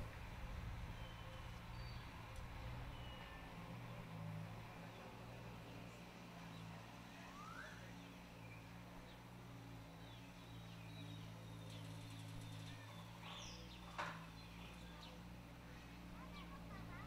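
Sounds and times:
small bird chirps: 10.0 - 15.2.

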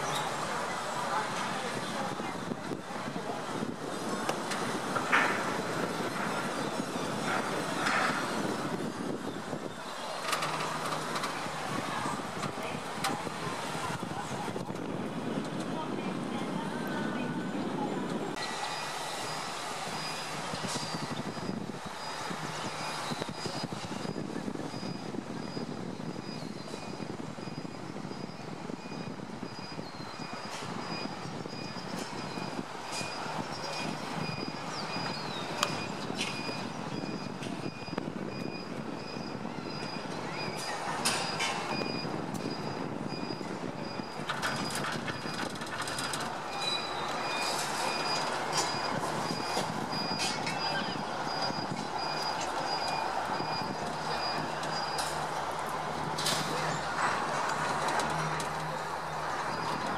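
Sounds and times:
cable car running noise: 0.0 - 59.9.

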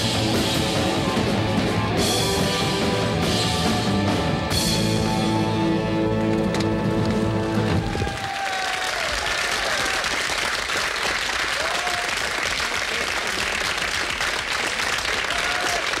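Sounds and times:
band music: 0.0 - 8.3
audience applause: 7.5 - 16.0
high calls from audience: 7.7 - 10.3, 11.5 - 12.5, 15.0 - 16.0.

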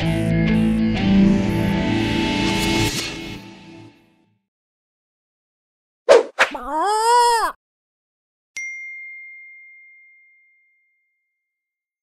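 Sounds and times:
high bell-like ding: 8.6 - 11.2.

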